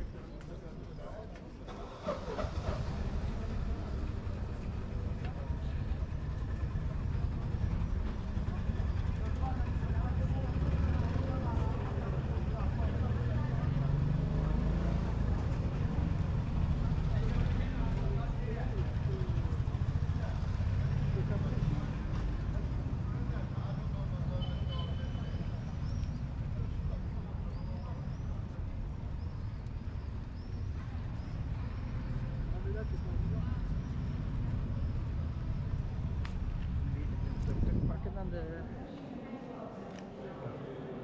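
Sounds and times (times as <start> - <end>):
voices talking indistinctly: 0.0 - 41.0
motor rickshaw rumble: 1.6 - 38.4.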